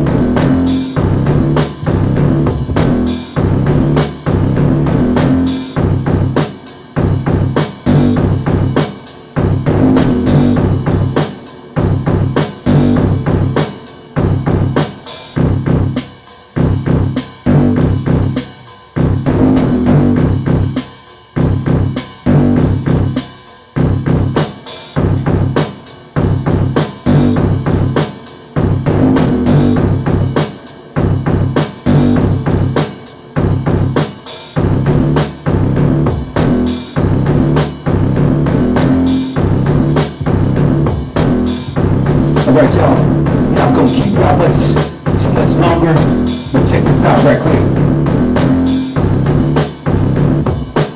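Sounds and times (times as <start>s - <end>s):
synth bassline: 0.0s - 6.4s, 7.0s - 8.8s, 9.4s - 11.2s, 11.8s - 13.6s, 16.6s - 18.4s, 19.0s - 20.8s, 21.4s - 23.2s, 28.6s - 30.4s, 31.0s - 32.8s, 34.6s - 50.6s
drum machine beat: 0.0s - 50.9s.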